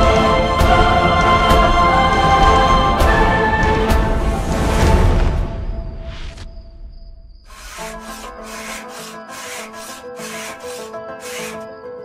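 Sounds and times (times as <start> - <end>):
background music: 0.0 - 5.9, 7.5 - 12.0
hand sanding wood: 7.5 - 11.6.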